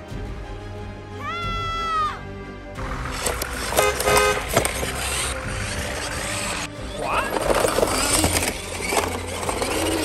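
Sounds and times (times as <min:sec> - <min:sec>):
engine rumble: 0:02.7 - 0:10.0
vehicle horn toot: 0:03.5 - 0:05.3.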